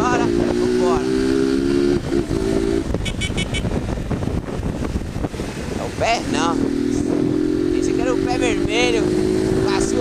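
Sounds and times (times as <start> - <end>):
motorcycle engine cruising: 0.0 - 10.0
road and traffic noise: 0.0 - 10.0
high-pitched beeps: 3.0 - 3.7.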